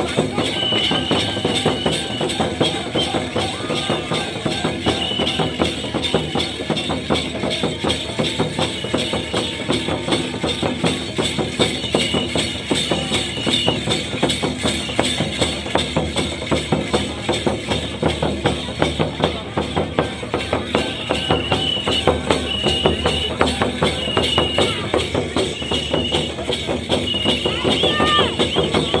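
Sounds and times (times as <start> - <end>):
bells jingling: 0.0 - 29.0
drum beaten in steady rhythm: 0.0 - 29.0.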